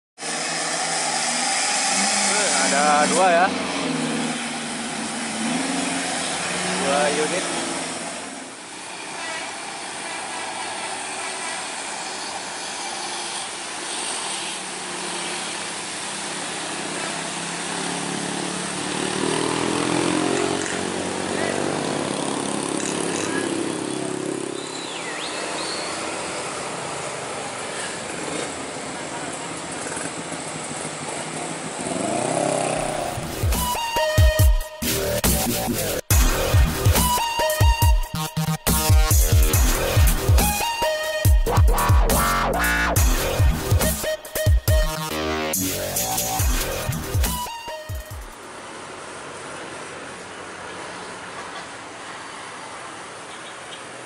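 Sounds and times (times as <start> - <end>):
rain and wet tyres hissing: 0.2 - 19.5, 48.4 - 54.0
truck diesel engines: 0.2 - 37.5
electronic music with heavy bass: 1.0 - 4.4, 32.8 - 48.4.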